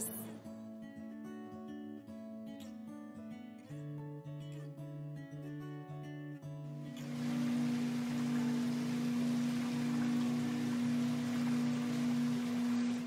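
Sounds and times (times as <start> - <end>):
pottery wheel motor hum: 7.0 - 13.0.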